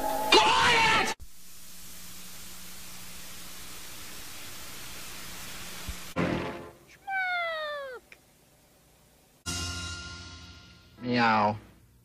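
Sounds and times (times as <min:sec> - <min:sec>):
cat meowing: 0:07.0 - 0:08.1.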